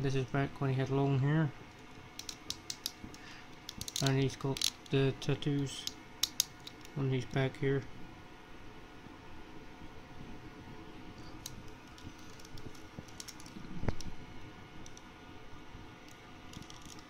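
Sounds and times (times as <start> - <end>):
plastic figure clicks and rustles: 1.7 - 5.0, 5.8 - 7.0, 11.4 - 14.1, 16.1 - 17.0.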